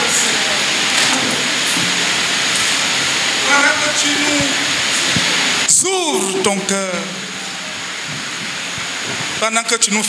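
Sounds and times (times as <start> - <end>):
hall background hiss: 0.0 - 10.0.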